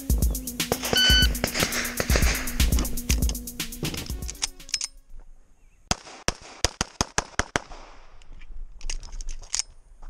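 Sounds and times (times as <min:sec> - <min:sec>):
background music: 0:00.0 - 0:05.0
rapid pistol shots: 0:00.7 - 0:02.9, 0:05.9 - 0:08.0.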